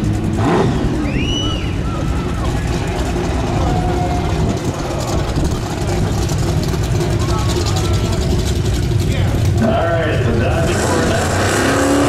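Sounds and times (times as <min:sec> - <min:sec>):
car engine idling loudly: 0:00.0 - 0:12.0.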